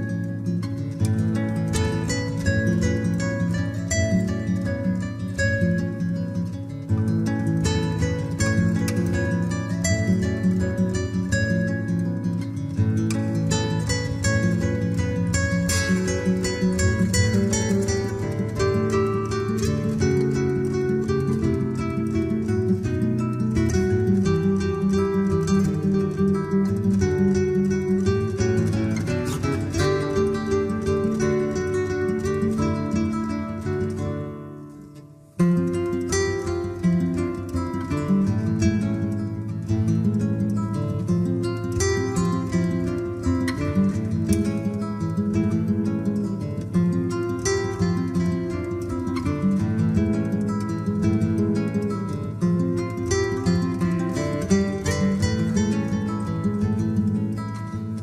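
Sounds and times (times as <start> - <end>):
classical guitars playing: 0.0 - 58.0.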